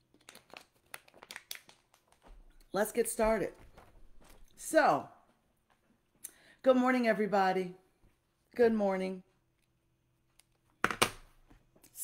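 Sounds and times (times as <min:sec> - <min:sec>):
crinkling and clicking handling noise: 0:00.0 - 0:02.8.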